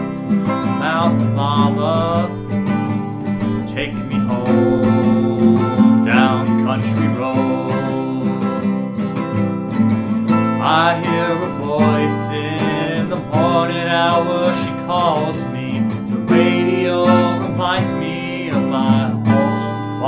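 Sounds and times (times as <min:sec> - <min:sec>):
acoustic guitar strumming: 0:00.0 - 0:20.0
man singing wordless notes: 0:00.8 - 0:08.6, 0:10.6 - 0:20.0.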